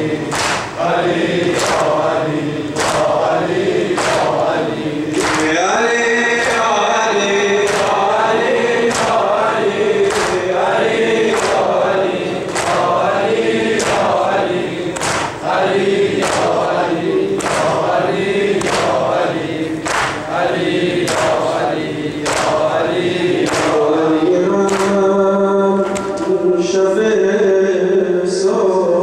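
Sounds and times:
men chanting in unison: 0.0 - 29.0.

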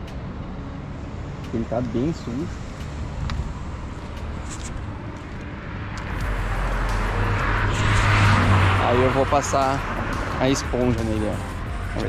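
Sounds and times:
vehicle passing on road: 0.0 - 12.0.

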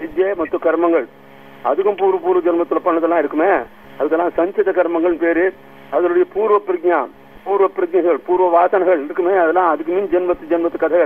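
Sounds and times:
man talking: 0.0 - 11.0.

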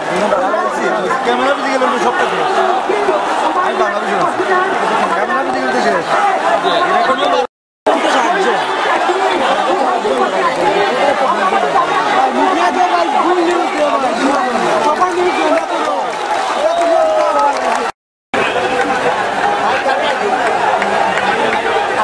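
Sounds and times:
crowd talking and calling: 0.0 - 22.0.

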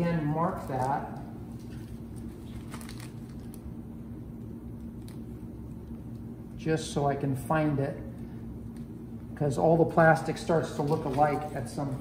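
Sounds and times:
steady low hum: 0.0 - 12.0
plastic crinkling: 0.5 - 3.6.

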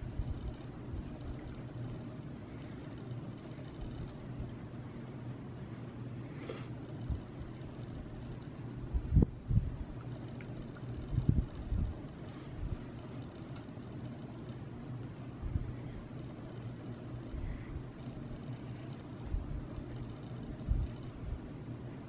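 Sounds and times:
steady low hum: 0.0 - 22.0
dull low thumps: 8.9 - 9.9.

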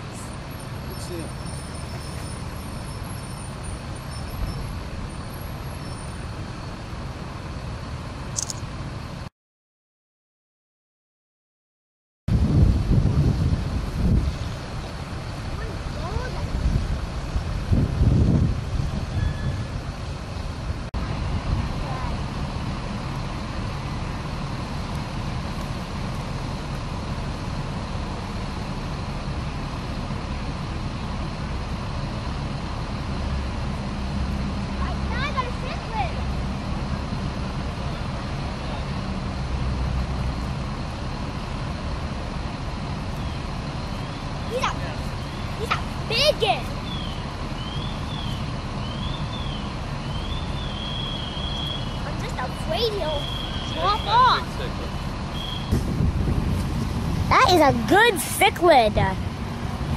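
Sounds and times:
road traffic rumble: 0.0 - 9.3, 12.3 - 59.9
wind buffeting microphone: 12.3 - 21.8, 54.5 - 59.9.

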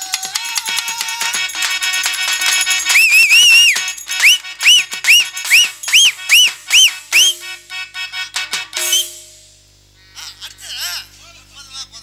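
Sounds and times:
shrill whistle-like tone: 2.9 - 7.6, 8.8 - 9.4
drum strikes falling in pitch: 3.3 - 7.8, 8.4 - 9.6.

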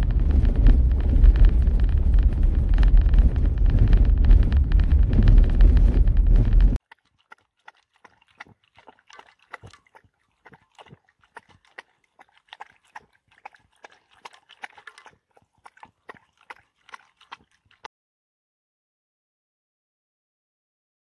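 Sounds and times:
dog crunching kibble in metal bowl: 0.0 - 17.9.

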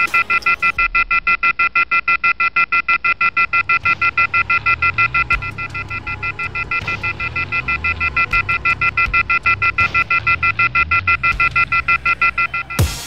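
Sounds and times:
rapid electronic beeping: 0.0 - 13.0.

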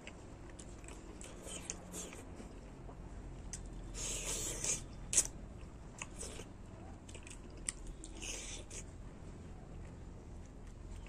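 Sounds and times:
person chewing crunchy food: 0.0 - 9.0.

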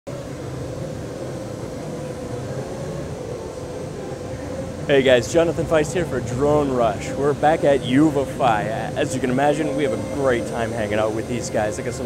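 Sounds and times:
drone propeller hum: 0.1 - 12.0.

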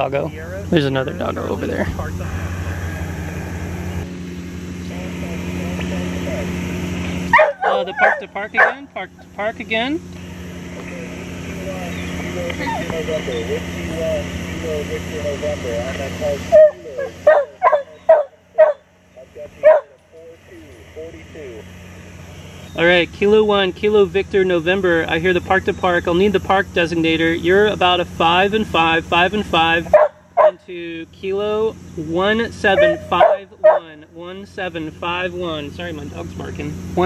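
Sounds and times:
radio hiss: 0.0 - 17.7, 19.1 - 29.9
low motor-like hum: 0.0 - 37.0
dog barking: 7.3 - 8.9, 16.5 - 18.9, 19.6 - 20.0, 29.9 - 30.6, 32.7 - 34.0
faint voice over radio: 10.8 - 17.2.

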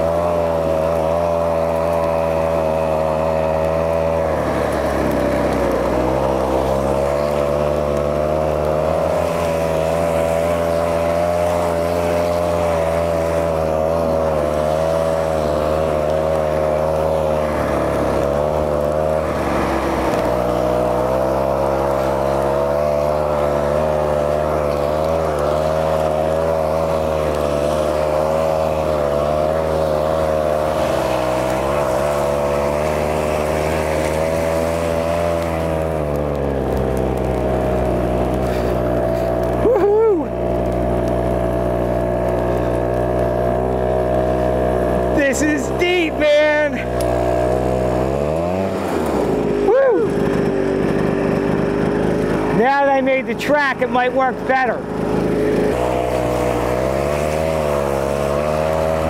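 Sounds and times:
two-stroke engine running under load: 0.0 - 59.0.

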